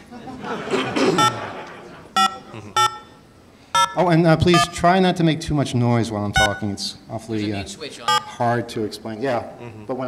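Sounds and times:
telephone keypad beeps: 1.2s - 1.4s, 2.2s - 3.2s, 3.8s - 4.0s, 6.4s - 6.7s, 8.1s - 8.4s.

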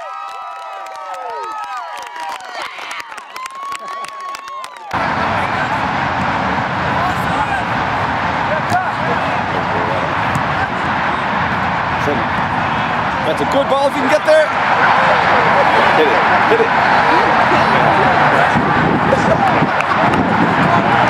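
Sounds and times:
people clapping: 0.0s - 5.8s, 14.2s - 21.0s
crowd shouting: 0.0s - 21.0s
open-air field ambience: 0.0s - 21.0s
distant players shouting: 3.7s - 21.0s.

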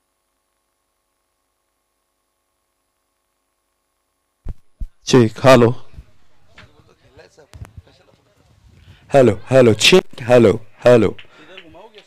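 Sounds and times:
microphone thumps: 4.4s - 5.0s
faint distant voices: 5.8s - 9.7s.

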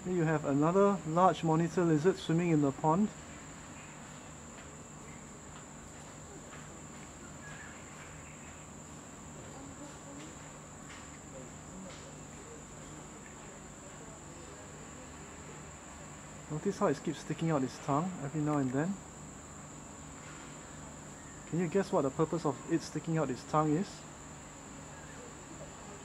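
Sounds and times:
faint low hum: 0.0s - 26.0s
insects droning: 0.0s - 26.0s.

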